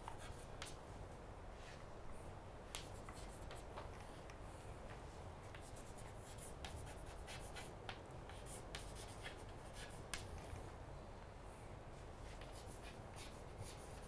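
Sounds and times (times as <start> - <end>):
chalk writing on chalkboard: 0.0 - 0.8, 2.7 - 3.9, 5.4 - 10.4, 12.2 - 14.0.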